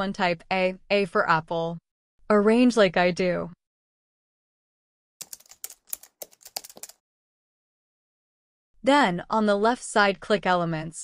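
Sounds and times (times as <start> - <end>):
keyboard key clicks: 5.2 - 7.0.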